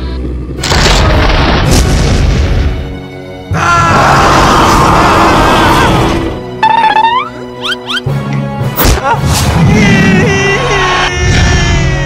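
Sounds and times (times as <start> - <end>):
background music: 0.8 - 12.0.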